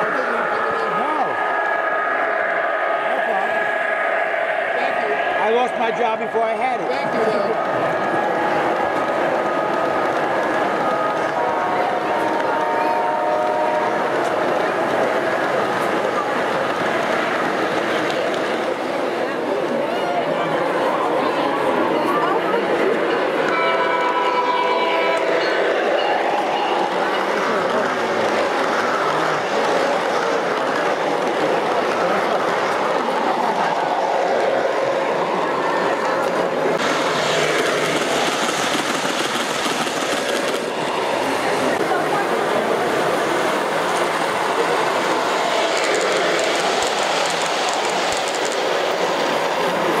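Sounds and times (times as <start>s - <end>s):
model train running on track: 0.0s - 50.0s
model train horn blast: 11.4s - 14.0s, 23.5s - 25.3s
model train wheels rumbling: 26.8s - 50.0s.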